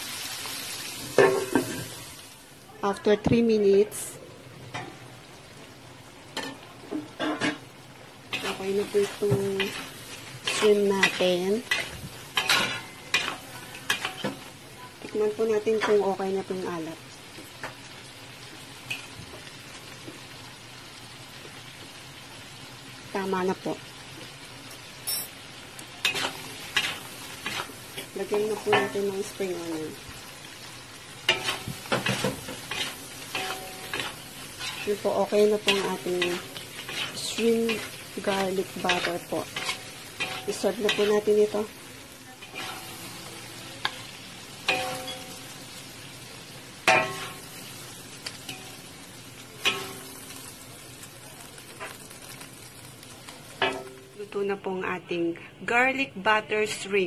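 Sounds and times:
shrimp sizzling in wok: 0.0s - 55.0s.

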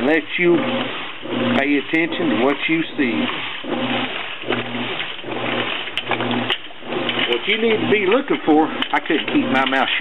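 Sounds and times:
washing machine motor humming: 0.0s - 10.0s
washing machine wash sound: 0.0s - 10.0s.

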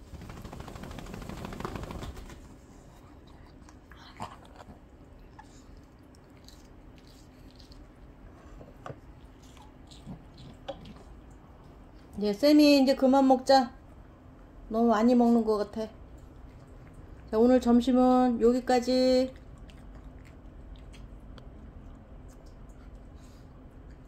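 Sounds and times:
dogs crunching carrots: 3.0s - 11.4s, 19.2s - 24.0s.

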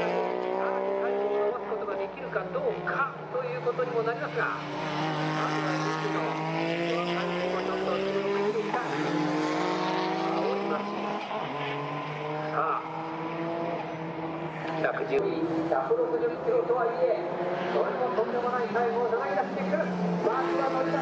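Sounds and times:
car engine revving hard: 0.0s - 1.8s, 4.2s - 15.7s, 16.4s - 21.0s.

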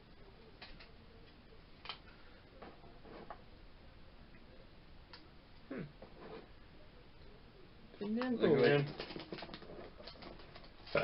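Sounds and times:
small packet rustling: 8.6s - 11.0s.

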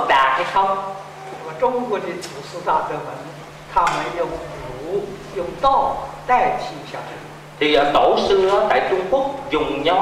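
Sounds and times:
man speaking: 0.0s - 10.0s
steady low hum: 0.0s - 10.0s.

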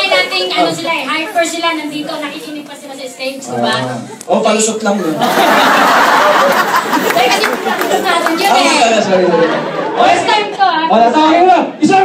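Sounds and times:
people talking into microphones: 0.0s - 12.0s.

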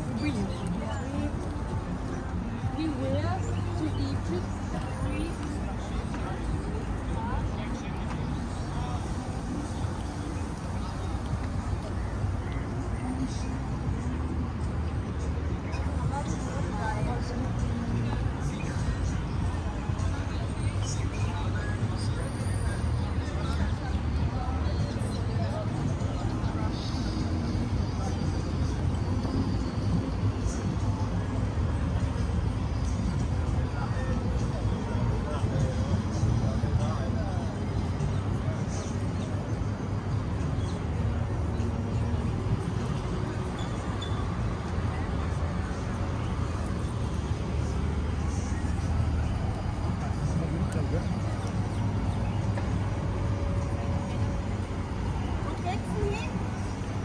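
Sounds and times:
faint voices of people: 0.0s - 57.0s
steady low city rumble: 0.0s - 57.0s.

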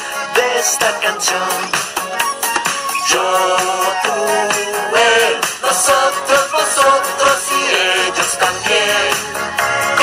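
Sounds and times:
upbeat backing track: 0.0s - 10.0s
cartoon voice singing: 0.4s - 5.0s.

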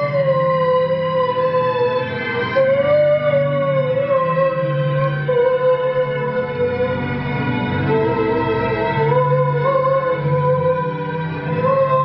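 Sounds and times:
man singing high wailing note: 2.6s - 7.0s, 7.9s - 12.0s.

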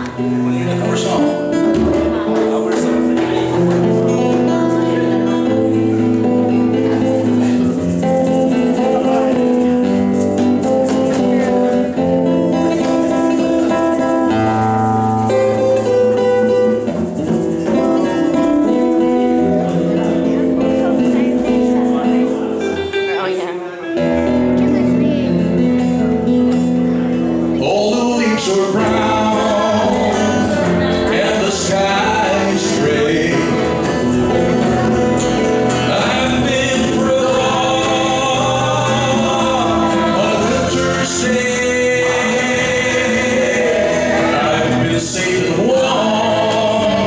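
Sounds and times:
strummed guitars: 0.0s - 47.0s
hand drums: 0.8s - 22.4s
bass: 24.2s - 47.0s
voices singing along: 27.5s - 47.0s.

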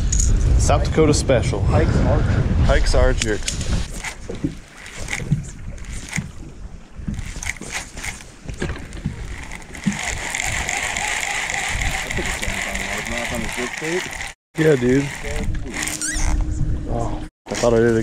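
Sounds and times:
wind: 0.0s - 18.0s
water noise: 2.9s - 16.5s
fishing reel cranking whir: 3.8s - 6.4s, 7.1s - 16.4s
fishing reel clicks and knocks: 3.9s - 6.3s, 7.1s - 16.4s.

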